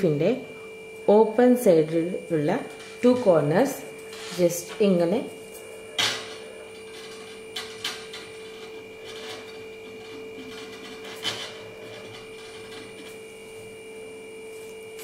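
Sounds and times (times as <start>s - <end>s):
steady electrical hum: 0.0s - 15.0s.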